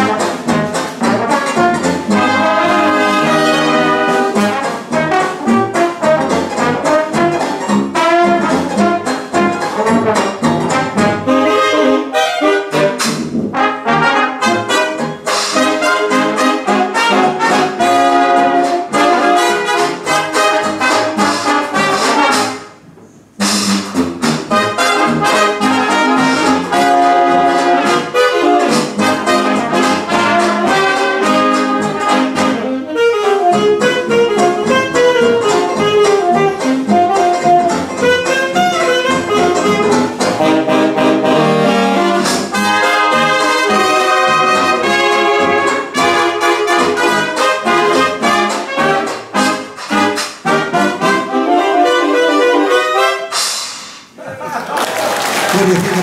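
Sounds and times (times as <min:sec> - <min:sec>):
jazz big band playing: 0:00.0 - 0:54.2.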